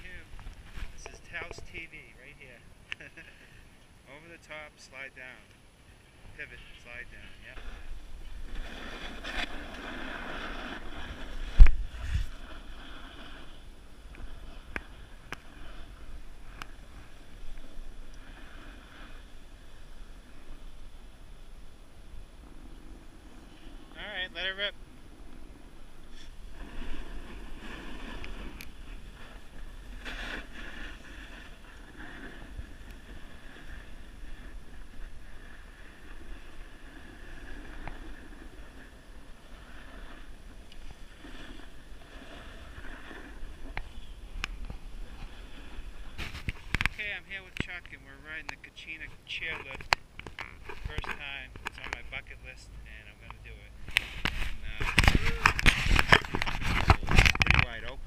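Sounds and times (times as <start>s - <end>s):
wind rumbling on microphone: 0.0s - 3.1s, 5.2s - 58.0s
skis scraping over snow: 0.0s - 3.3s, 6.3s - 52.3s, 53.8s - 58.0s.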